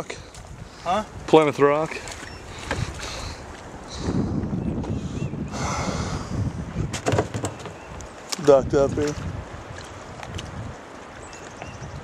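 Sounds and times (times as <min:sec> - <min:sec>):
wind rumbling on microphone: 0:00.0 - 0:12.0
sharp knocks: 0:06.9 - 0:07.8.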